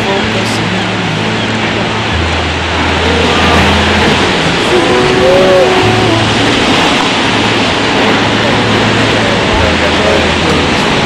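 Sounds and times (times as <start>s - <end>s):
background music with low bass: 0.0s - 11.0s
ocean waves breaking: 0.0s - 11.0s.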